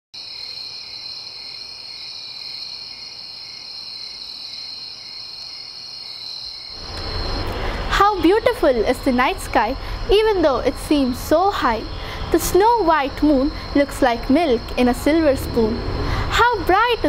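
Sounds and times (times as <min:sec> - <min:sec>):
crickets chirring: 0:00.2 - 0:17.0
room noise hiss: 0:00.2 - 0:17.0.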